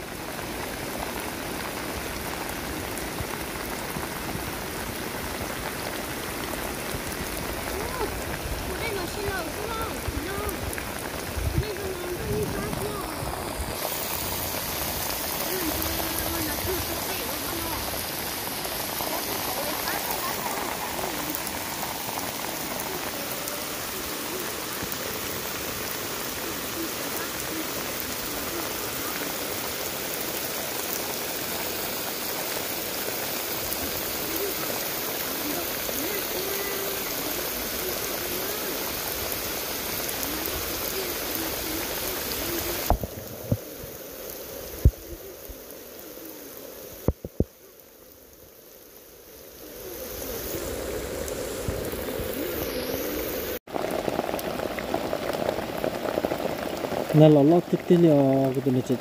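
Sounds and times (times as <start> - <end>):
steady rain falling: 0.0 - 59.0.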